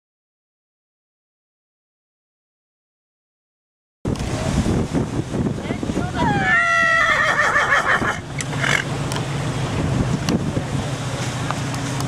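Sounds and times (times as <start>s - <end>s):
horse whinnying: 6.4s - 8.8s.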